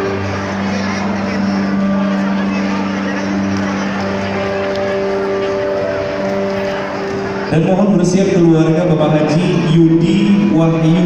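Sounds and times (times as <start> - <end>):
crowd chatter in a large hall: 0.0 - 11.0
soft music of long held chords: 0.0 - 11.0.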